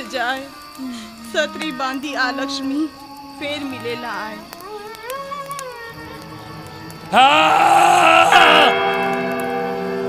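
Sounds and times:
sustained accompaniment tones: 6.0 - 10.0.

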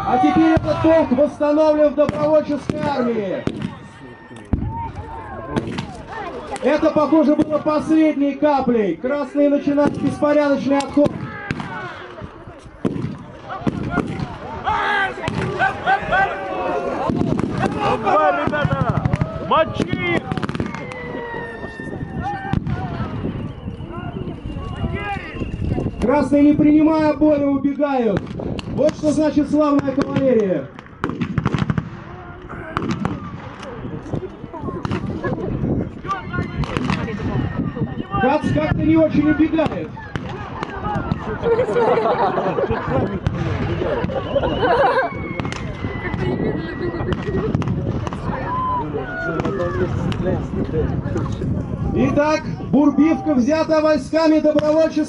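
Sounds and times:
people shouting and talking: 0.0 - 55.0
men shouting: 14.6 - 20.4.

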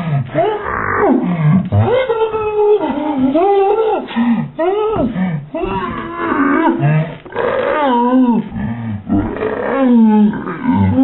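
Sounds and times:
man growling cries: 4.7 - 11.0.

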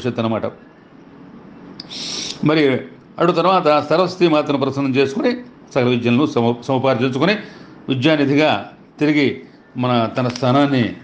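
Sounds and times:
brief hiss: 1.8 - 2.4
man speaking: 2.4 - 11.0.

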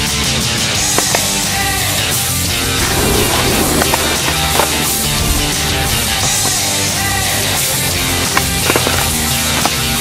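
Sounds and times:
skateboard clacks: 0.0 - 10.0.

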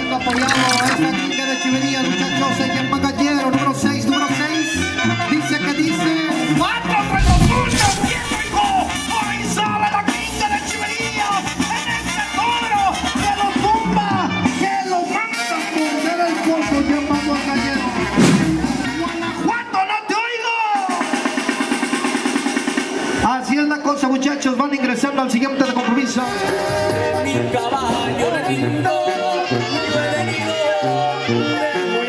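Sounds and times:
drums: 7.1 - 9.0, 17.9 - 19.3, 20.8 - 23.2.

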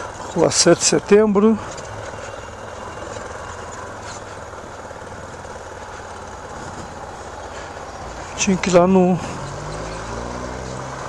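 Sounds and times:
motorcycle engine running: 0.0 - 11.0
road and wind noise: 0.0 - 11.0.

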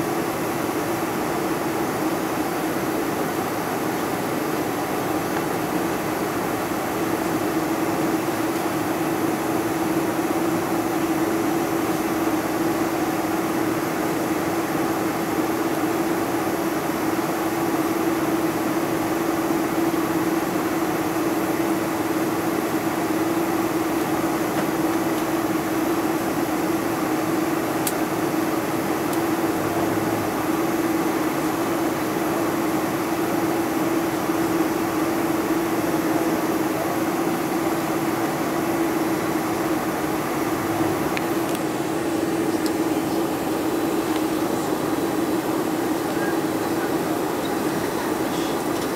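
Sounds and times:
airplane cabin drone: 0.0 - 48.9.

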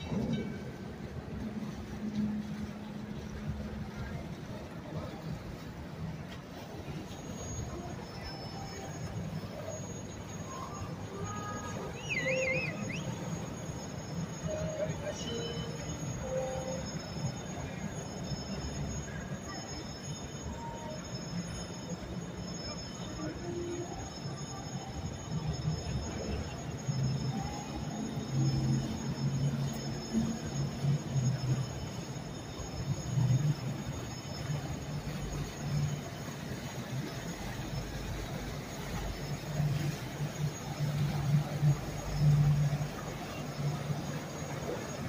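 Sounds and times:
boat engines rumbling: 0.0 - 45.0
city noise: 0.0 - 45.0.

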